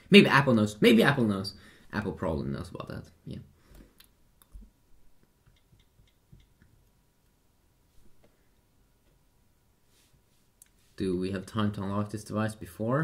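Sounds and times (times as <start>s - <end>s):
small clicks and ticks: 4.0s - 7.4s.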